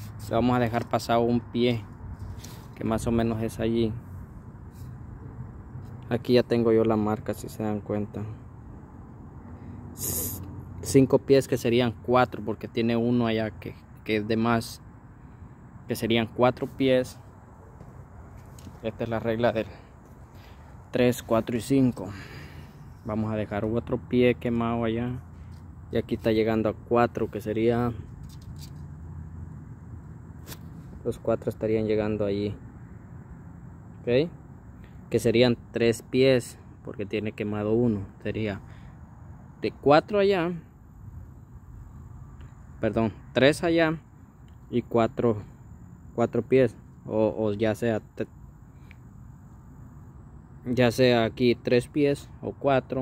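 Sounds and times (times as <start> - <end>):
soft hiss or rustle: 2.1 - 2.8, 16.6 - 18.9
faint hiss: 9.5 - 10.6.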